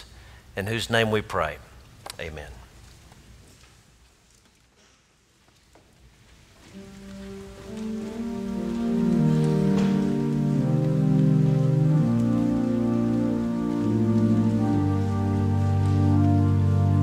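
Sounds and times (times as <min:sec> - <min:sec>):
pipe organ chords: 0:06.6 - 0:17.0.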